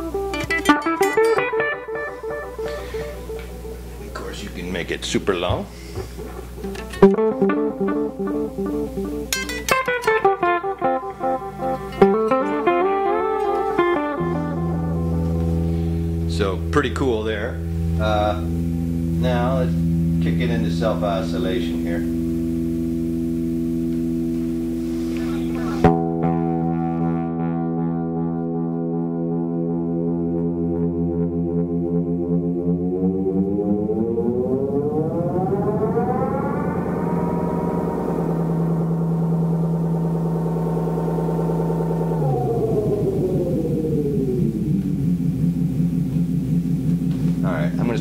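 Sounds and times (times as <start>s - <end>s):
delay pedal droning feedback tone: 0.0s - 48.0s.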